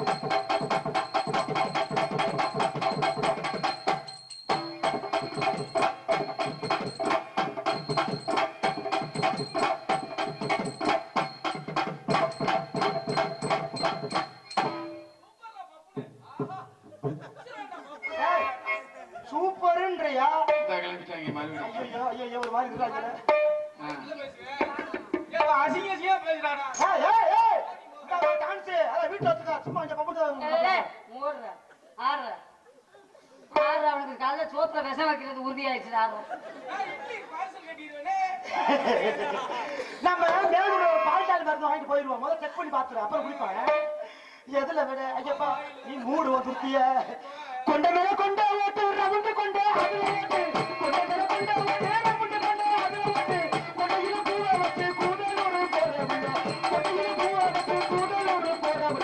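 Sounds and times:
tabla strokes: 0:00.0 - 0:15.2, 0:22.6 - 0:25.8, 0:47.7 - 0:59.0
held notes of band: 0:49.1 - 0:59.0.

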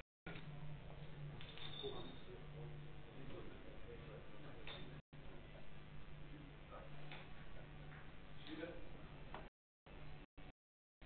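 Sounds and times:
low room hum: 0:00.3 - 0:10.5.

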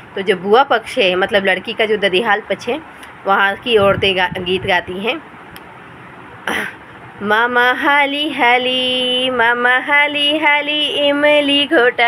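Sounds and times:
woman speaking: 0:00.2 - 0:05.3
woman clearing her throat: 0:06.5 - 0:06.8.

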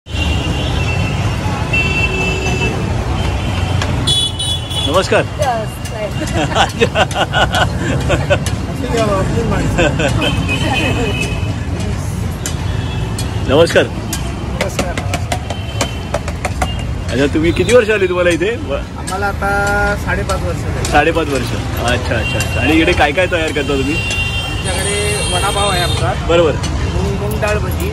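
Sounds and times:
road traffic rumble: 0:00.0 - 0:27.9.

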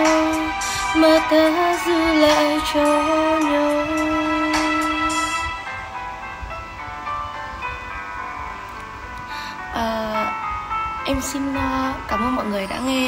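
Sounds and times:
instrumental pop ballad backing: 0:00.0 - 0:13.0.

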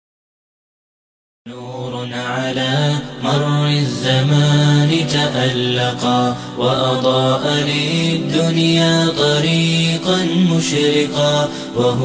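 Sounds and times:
voice chanting long gliding notes: 0:01.5 - 0:12.0.

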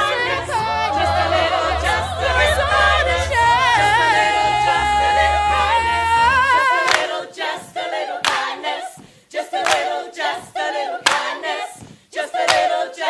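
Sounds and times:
ensemble singing a cappella: 0:00.0 - 0:13.0.

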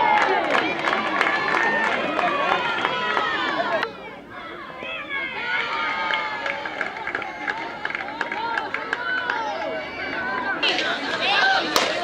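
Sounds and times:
crowd shouting and cheering: 0:00.0 - 0:12.0
sharp claps: 0:11.7 - 0:12.0.

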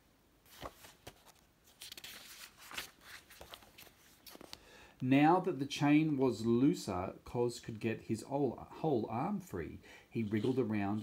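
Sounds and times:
book page rustling and turning: 0:00.4 - 0:04.6, 0:10.2 - 0:11.0.

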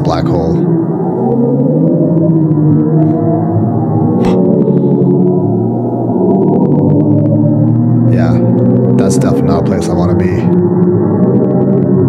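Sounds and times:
dense low drone: 0:00.0 - 0:12.0.

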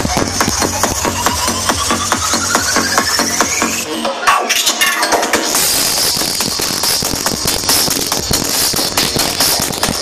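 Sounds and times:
festival crowd: 0:00.0 - 0:10.0
stage sound system crackle: 0:00.0 - 0:10.0.

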